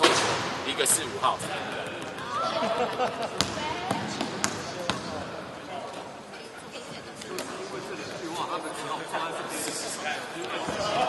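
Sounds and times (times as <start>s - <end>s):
voices in background: 0.0s - 11.0s.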